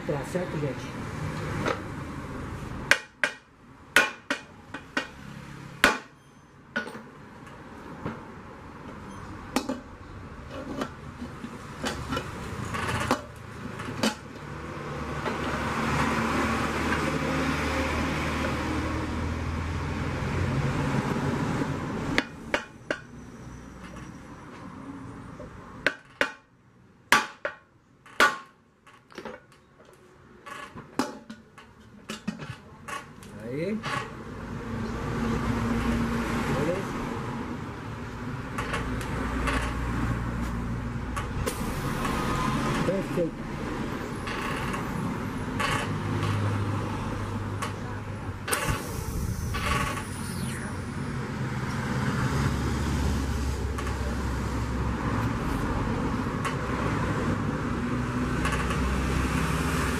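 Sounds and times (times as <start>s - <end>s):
steady rumbling noise: 47.2s - 56.7s.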